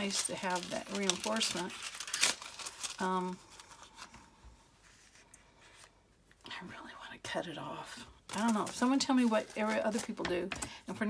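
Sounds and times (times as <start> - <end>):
paper envelope rustling: 0.0 - 6.0, 8.3 - 10.2.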